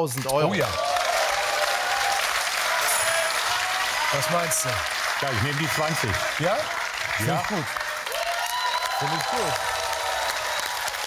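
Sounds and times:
studio audience applauding: 0:00.0 - 0:11.0.

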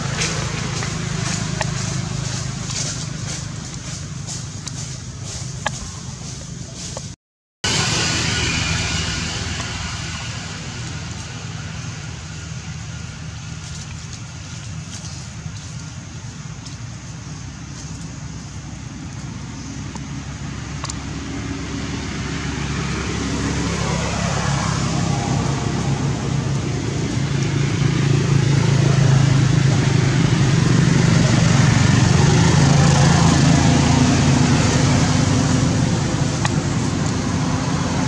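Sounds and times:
vehicle engine running: 0:00.0 - 0:38.0.

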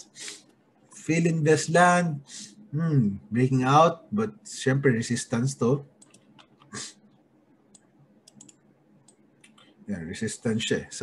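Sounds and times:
computer mouse clicking: 0:06.0 - 0:09.8.

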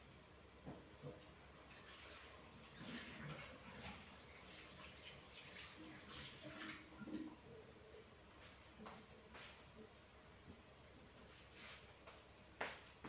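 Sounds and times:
water splashing in sink: 0:01.0 - 0:07.4.

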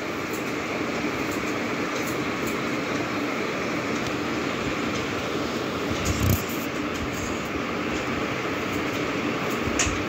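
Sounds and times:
steady rumble and hiss: 0:00.0 - 0:10.0.

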